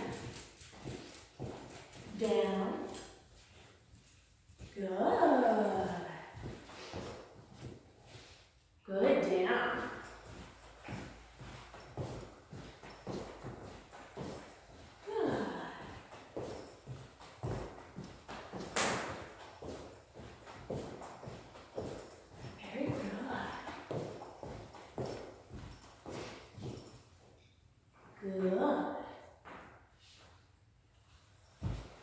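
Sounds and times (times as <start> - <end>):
footsteps on hardwood floor: 0.0 - 8.4, 9.2 - 27.1, 31.4 - 32.0.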